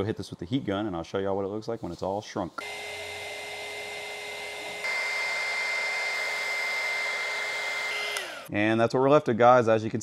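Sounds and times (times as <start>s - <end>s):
heat gun running: 2.6s - 8.5s.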